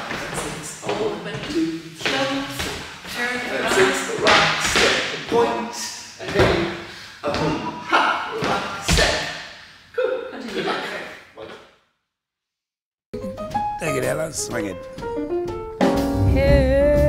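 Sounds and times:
person talking: 13.8 - 14.8.

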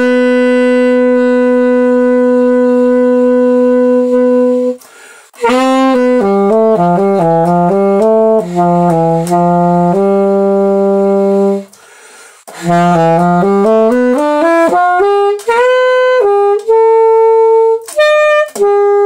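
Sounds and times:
solo alto saxophone jazz: 0.0 - 19.0
saxophonist breathing: 4.8 - 5.4, 11.7 - 12.5.

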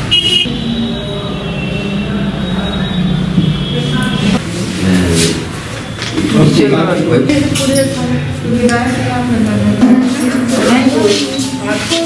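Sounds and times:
high-pitched vehicle horn beep: 0.0 - 4.4
road traffic rumble: 0.0 - 12.0.

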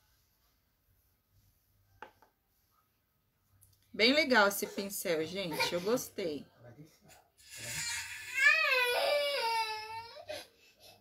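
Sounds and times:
baby crying: 7.4 - 10.5.

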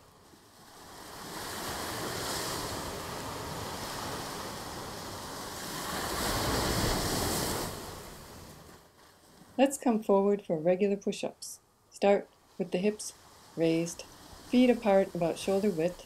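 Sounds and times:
ocean surf washing onto beach: 0.0 - 8.8.

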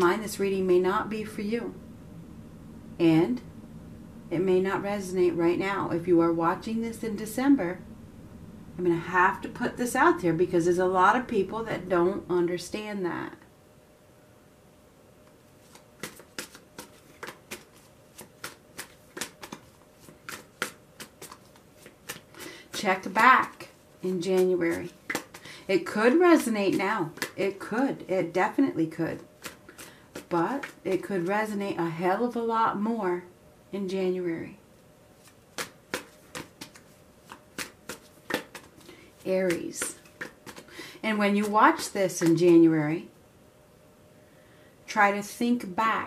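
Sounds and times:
cards being shuffled: 15.6 - 23.7, 24.3 - 25.5, 26.4 - 27.4, 29.2 - 31.4, 35.2 - 40.8, 41.4 - 42.6.

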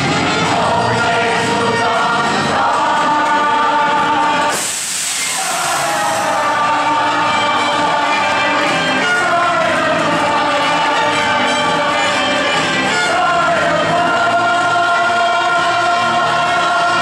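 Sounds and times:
chorus singing with accompaniment: 0.0 - 17.0
burst of hiss: 4.4 - 6.8.

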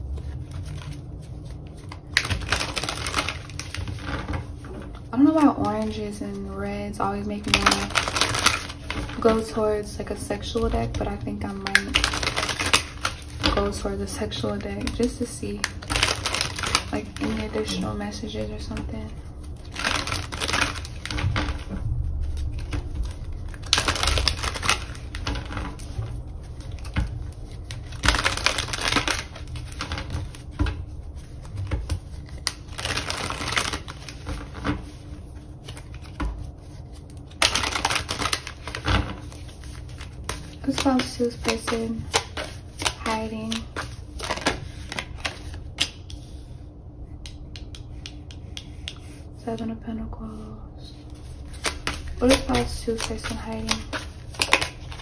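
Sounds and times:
cards being shuffled: 0.0 - 6.6, 7.4 - 9.6, 11.0 - 46.4, 51.1 - 55.0.

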